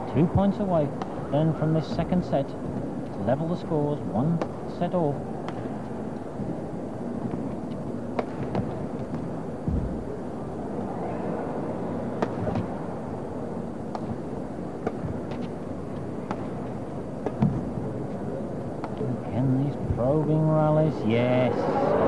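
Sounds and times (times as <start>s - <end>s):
murmur of indoor arena: 0.0s - 22.0s
rackets striking shuttlecock: 4.3s - 4.6s, 5.4s - 6.0s, 8.0s - 9.4s, 12.1s - 12.8s, 13.8s - 17.8s, 18.7s - 19.1s.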